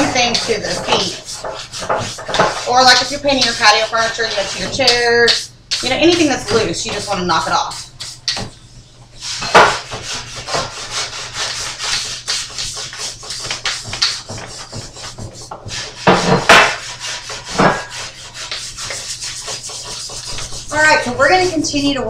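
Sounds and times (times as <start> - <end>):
scrub brush rasping on rusty metal: 0.0 - 8.3, 9.2 - 22.0.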